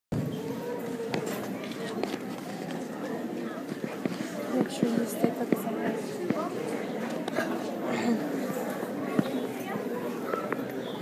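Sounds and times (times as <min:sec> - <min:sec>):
crowd chattering in a hall: 0:00.1 - 0:11.0.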